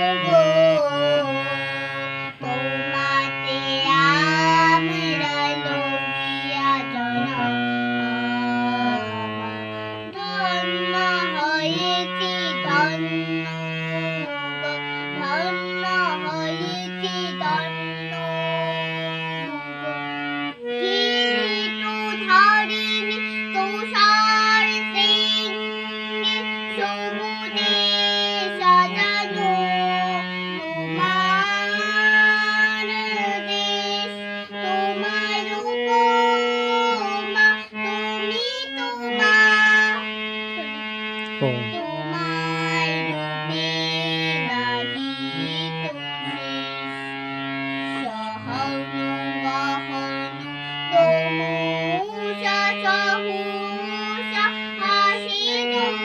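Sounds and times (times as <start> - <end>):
girl singing: 0.0 - 56.0
harmonium chords and drone: 0.0 - 56.0.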